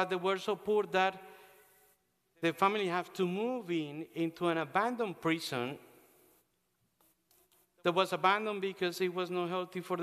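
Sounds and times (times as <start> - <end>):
man speaking in reverberant church: 0.0 - 10.0.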